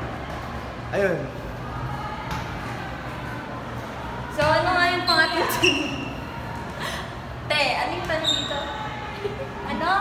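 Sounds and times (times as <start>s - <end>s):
young people talking: 7.5s - 10.0s
short high squeak: 8.2s - 8.7s.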